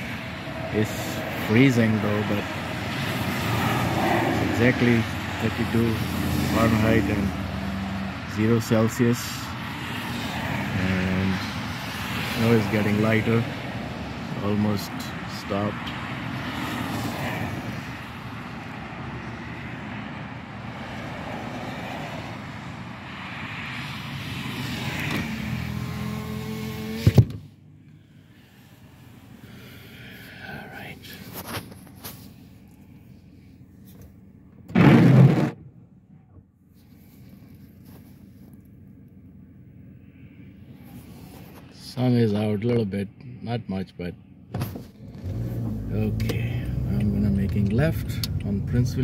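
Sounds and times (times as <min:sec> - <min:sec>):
car road and wind noise: 0:00.0 - 0:49.0
power window whine and clunk: 0:26.4 - 0:27.5.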